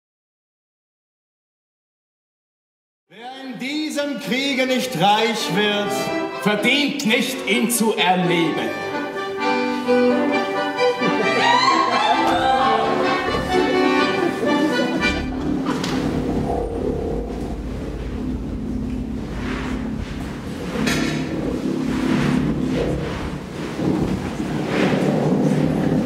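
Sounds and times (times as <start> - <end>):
held musical tones: 3.2 - 23.8
sustained drone: 13.3 - 26.0
low rumble: 15.0 - 26.0.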